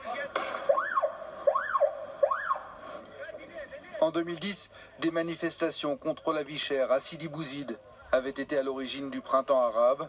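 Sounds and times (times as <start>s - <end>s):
siren sweeping up and down: 0.6s - 2.8s.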